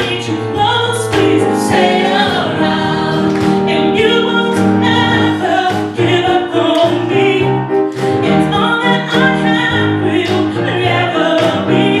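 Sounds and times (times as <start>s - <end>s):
vocal group singing in harmony: 0.0s - 12.0s.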